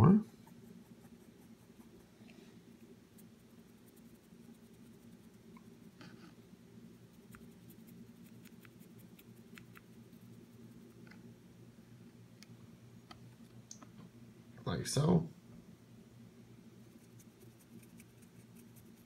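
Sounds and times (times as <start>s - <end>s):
low room hum: 0.0s - 19.0s
dry brush ticking on plastic: 7.0s - 11.2s, 16.9s - 19.0s.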